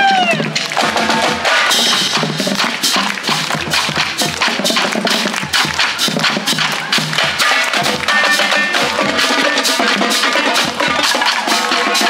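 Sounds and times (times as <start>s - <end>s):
marching band playing: 0.0s - 12.0s
snare and tenor drums beating: 0.0s - 12.0s.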